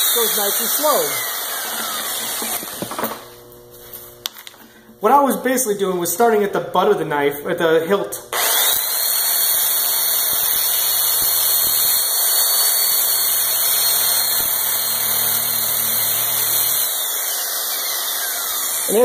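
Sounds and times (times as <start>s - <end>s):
car polisher whining: 0.0s - 3.8s, 8.4s - 19.0s
disc grinding on steel blade: 10.5s - 19.0s.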